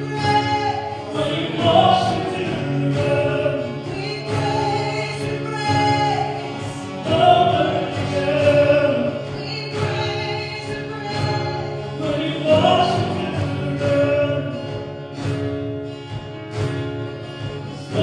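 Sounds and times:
people singing together: 0.0 - 15.0, 17.8 - 18.0.

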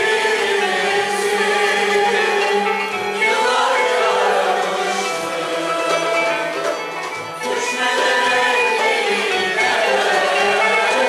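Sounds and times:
choir singing: 0.0 - 11.0
oud: 0.0 - 11.0
violins: 0.0 - 11.0
wind instrument: 0.0 - 11.0.

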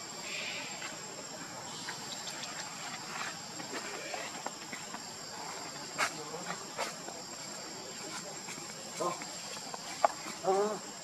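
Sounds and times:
insects calling: 0.0 - 11.0.

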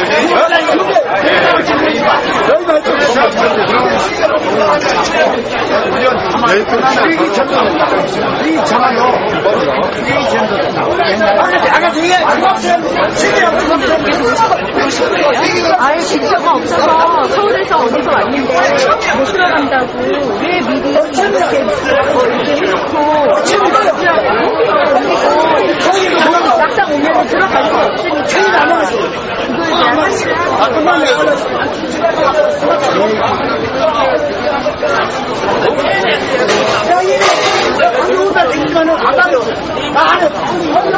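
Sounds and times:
crowd chatter: 0.0 - 40.9.

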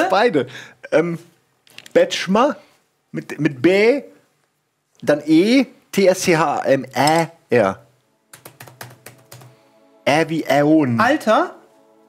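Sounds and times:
quiet background music: 5.0 - 12.0
laptop keyboard typing: 8.3 - 9.6.

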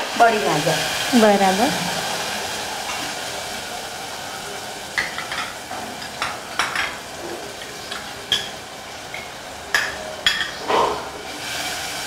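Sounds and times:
hot oil sizzling in a pot: 0.0 - 12.0
kitchenware clinking: 5.0 - 11.2.

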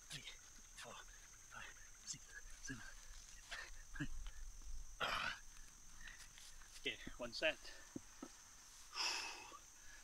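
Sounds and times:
man huffing and grunting: 5.0 - 5.4.

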